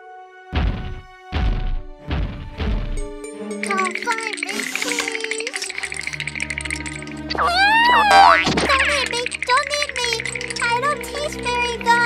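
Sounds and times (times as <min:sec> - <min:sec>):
cartoon background music: 0:00.1 - 0:12.0
high-pitched cartoon voice: 0:07.3 - 0:12.0.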